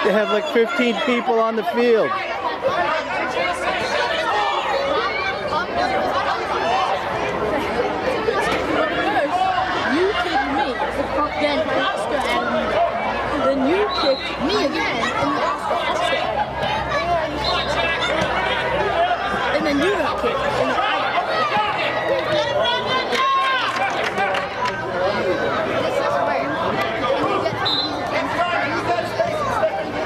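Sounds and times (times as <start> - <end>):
crowd chattering: 0.0 - 30.0.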